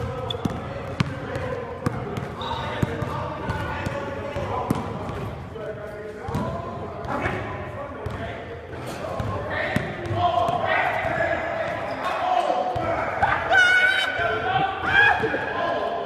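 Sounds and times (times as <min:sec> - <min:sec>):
basketball bouncing: 0:00.0 - 0:05.2, 0:06.3 - 0:06.6.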